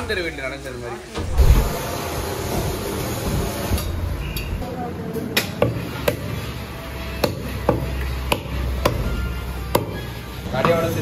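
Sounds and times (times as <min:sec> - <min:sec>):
cleaver chopping meat and bone: 0:07.2 - 0:09.1, 0:09.7 - 0:10.0.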